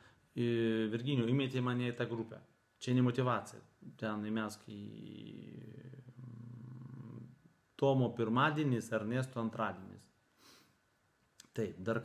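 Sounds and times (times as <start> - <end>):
person speaking word: 1.8 - 8.8
man humming closed-mouth: 4.8 - 7.3.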